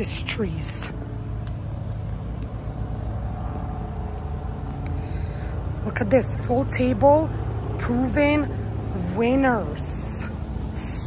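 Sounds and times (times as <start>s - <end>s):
low rumble of engines: 0.0s - 11.0s.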